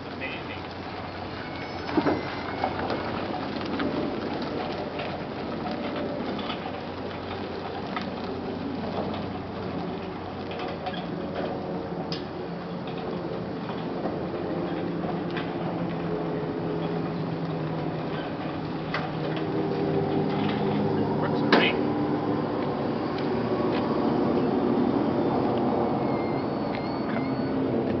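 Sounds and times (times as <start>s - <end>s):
trailers rattling and clicking: 0.0s - 28.0s.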